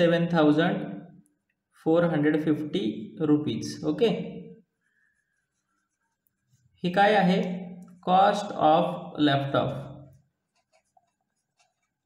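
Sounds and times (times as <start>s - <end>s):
pen scratching on paper: 4.8s - 6.8s, 10.1s - 12.0s.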